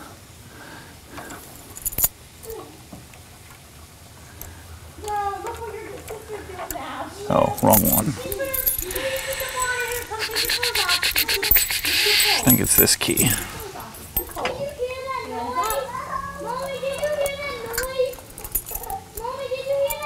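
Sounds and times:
keys jangling: 1.6 - 2.1, 7.5 - 14.4, 16.5 - 20.0.

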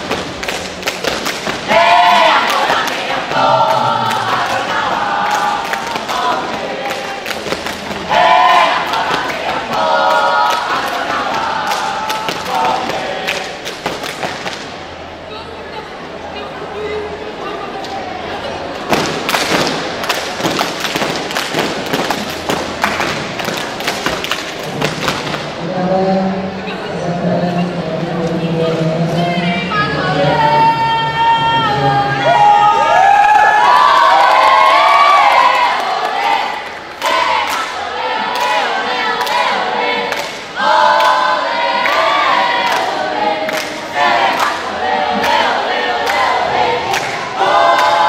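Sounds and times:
group clapping in unison: 0.0 - 14.7, 18.9 - 25.5, 33.6 - 48.0.

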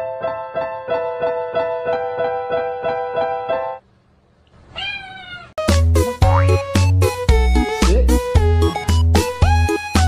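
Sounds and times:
cat meowing: 4.7 - 5.7
bouncy music with heavy bass beat: 5.7 - 10.0
digital piano notes: 6.2 - 6.9.

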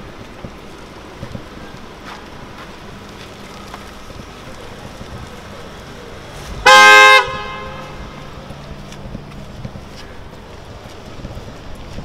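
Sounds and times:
car horn honk: 6.6 - 8.3.

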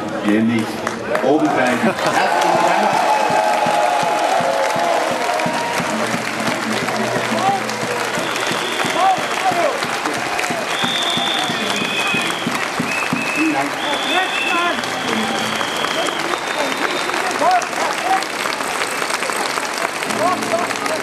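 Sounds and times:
crowd applauding: 0.0 - 21.0
crowd voices and calls: 0.0 - 21.0
high-pitched whistle tones: 8.2 - 9.6, 10.7 - 17.4.

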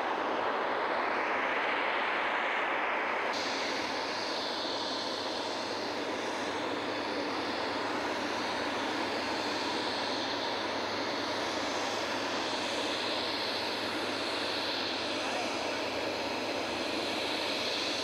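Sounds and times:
jet engines running: 0.0 - 18.0.

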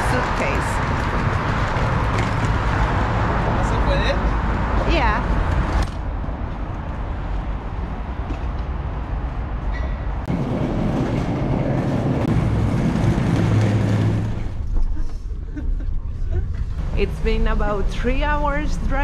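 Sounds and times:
suitcase wheels rolling on concrete: 0.2 - 8.8.

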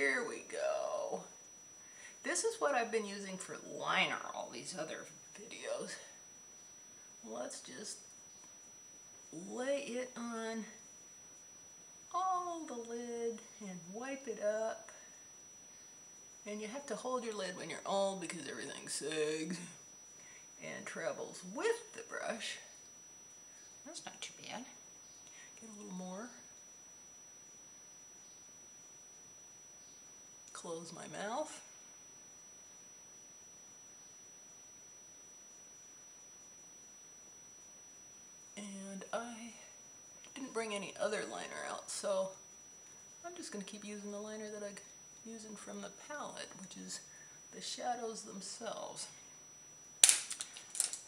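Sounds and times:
thin high-pitched steady tone: 0.0 - 51.0
makeup tools clicking and rattling: 50.0 - 51.0
sharp click: 50.0 - 51.0.

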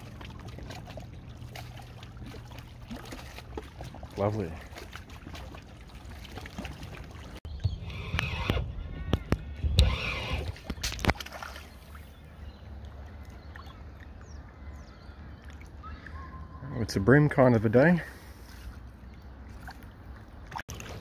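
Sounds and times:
fish splashing at water surface: 0.0 - 7.4, 10.4 - 12.1
water lapping: 0.0 - 8.6, 9.8 - 16.8, 17.4 - 21.0.

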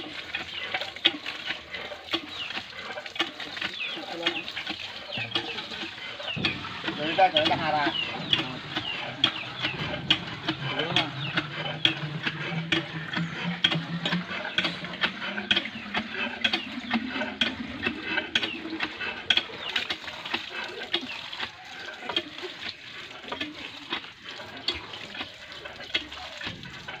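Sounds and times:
water gushing into metal pot: 0.0 - 27.0
hand pump handle clanking: 0.3 - 27.0.

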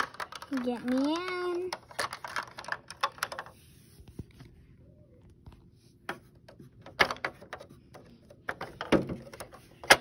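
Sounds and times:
toy parts clicking and tapping: 0.0 - 3.5.

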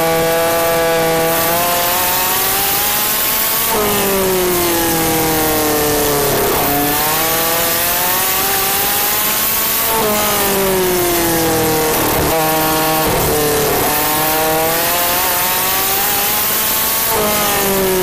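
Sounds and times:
race car engine at speed: 0.0 - 18.0.

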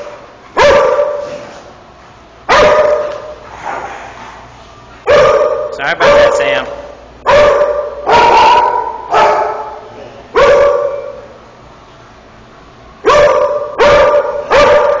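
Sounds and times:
dog barking: 0.6 - 1.3, 2.5 - 3.4, 5.1 - 6.6, 7.2 - 11.3, 13.0 - 15.0.

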